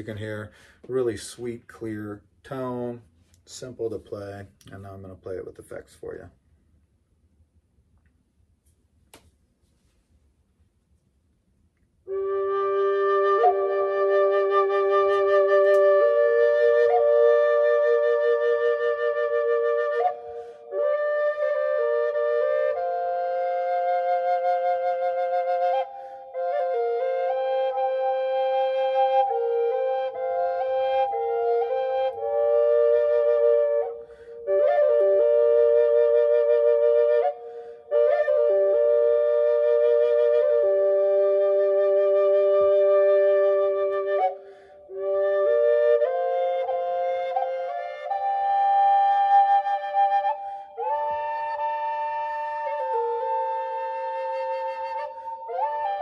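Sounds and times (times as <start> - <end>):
drone flute melody over drone: 12.1 - 37.4.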